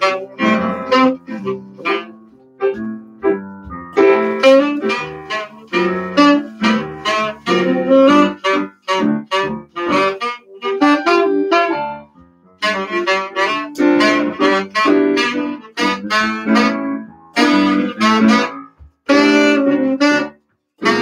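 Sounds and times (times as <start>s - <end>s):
electric piano: 0.0s - 21.0s
saxophone playing jazz: 0.0s - 21.0s.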